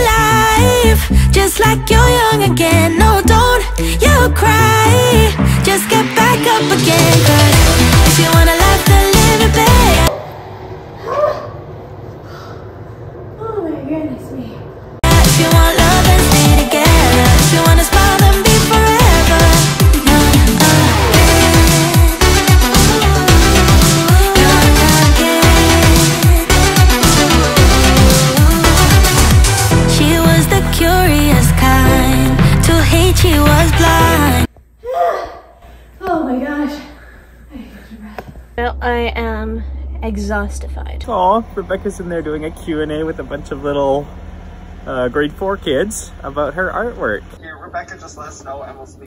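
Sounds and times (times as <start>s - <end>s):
pop song with singing: 0.0s - 10.1s, 15.0s - 34.6s
low room hum: 33.9s - 49.0s.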